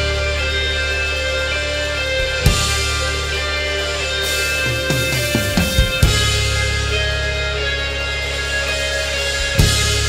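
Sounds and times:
instrumental rock music: 0.0 - 10.0
drum and cymbal hit: 4.2 - 7.0.

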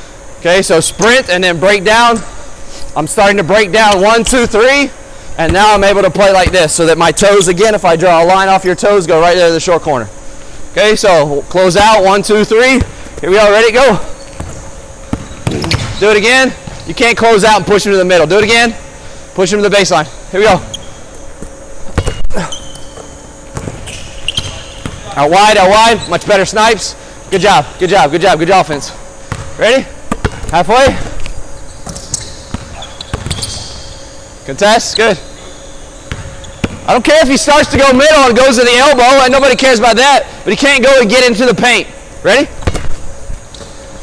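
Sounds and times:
basketball bouncing on wooden floor: 14.3 - 16.0, 21.4 - 25.1, 29.3 - 29.5, 30.1 - 31.1, 31.8 - 33.6, 36.1 - 36.9, 42.6 - 42.9.

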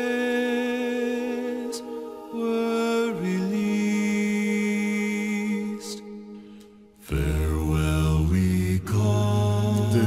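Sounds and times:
voices singing in harmony: 0.0 - 10.0
deep bass voice singing: 7.0 - 10.0.

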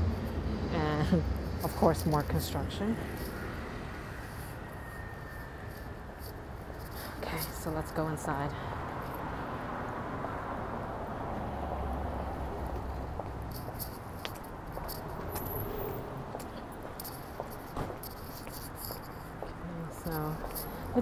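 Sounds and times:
low city rumble: 0.0 - 21.0.

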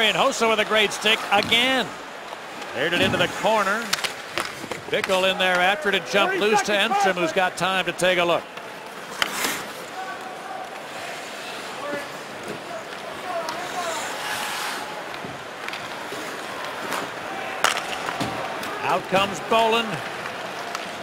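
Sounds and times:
arena crowd murmur: 0.0 - 3.9, 5.0 - 21.0
skates scraping on ice: 8.9 - 21.0
sticks clicking against puck: 17.6 - 19.3.

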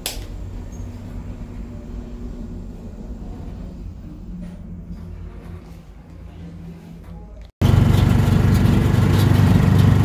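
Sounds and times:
elevator car rumbling: 7.6 - 10.0.

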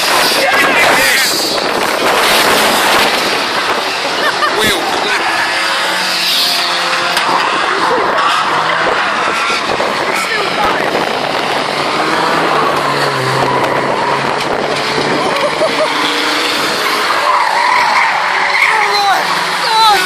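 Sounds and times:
race car engines revving: 0.0 - 20.0
tyres skidding: 0.0 - 20.0.

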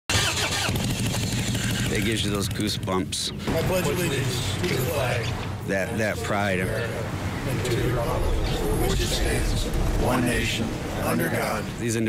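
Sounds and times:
motorcycle engine idling: 0.1 - 3.7.

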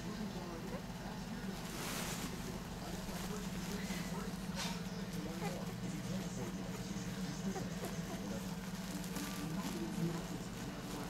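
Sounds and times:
steady low hum: 0.0 - 11.0
fabric rustle: 1.4 - 5.6, 8.4 - 11.0.

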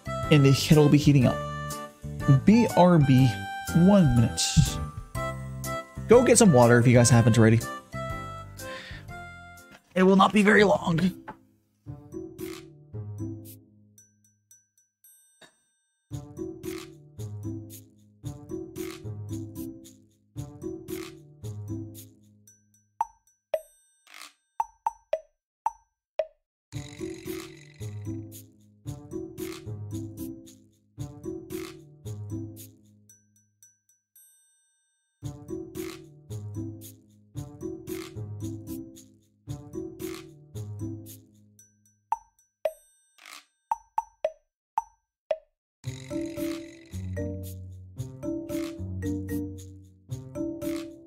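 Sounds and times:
looping background music: 0.0 - 14.0, 16.1 - 23.1, 26.8 - 33.0, 35.2 - 41.5, 45.8 - 51.0.

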